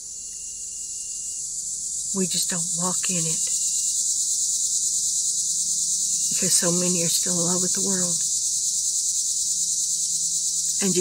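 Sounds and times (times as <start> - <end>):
insect chorus drone: 0.0 - 11.0.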